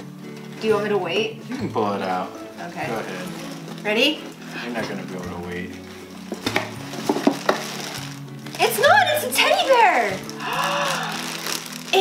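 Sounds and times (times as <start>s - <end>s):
plastic wrapping crinkling: 0.0s - 12.0s.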